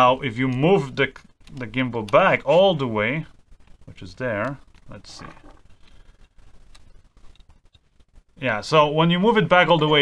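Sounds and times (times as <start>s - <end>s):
faint clicks and handling noise: 0.2s - 8.2s.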